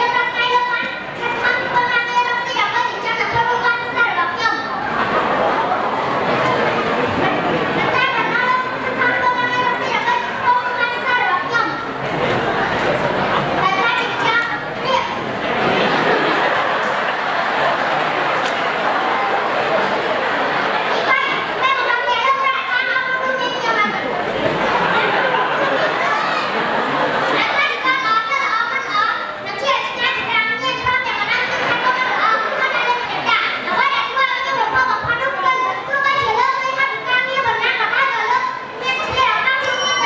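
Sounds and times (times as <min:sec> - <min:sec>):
boy speaking into a microphone: 0:00.0 - 0:04.9, 0:06.4 - 0:12.6, 0:13.3 - 0:15.2, 0:20.8 - 0:26.6, 0:27.2 - 0:40.0
background murmur: 0:00.0 - 0:40.0.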